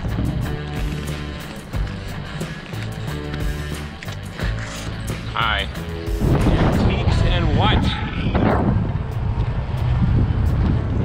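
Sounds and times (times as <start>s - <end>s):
wind buffeting microphone: 0.0s - 3.6s, 5.0s - 11.0s.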